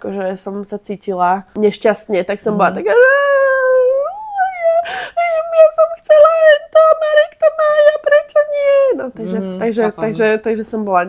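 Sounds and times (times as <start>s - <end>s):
woman imitating child whining: 2.9s - 5.7s.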